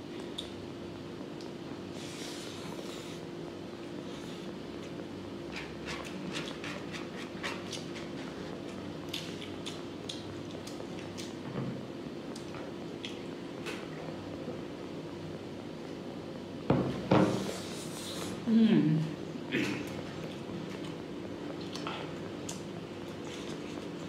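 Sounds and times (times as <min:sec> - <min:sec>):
steady low hum: 0:00.0 - 0:24.0
chewing with wet mouth clicks: 0:00.2 - 0:00.6, 0:08.6 - 0:11.4, 0:12.3 - 0:13.3, 0:19.9 - 0:24.0.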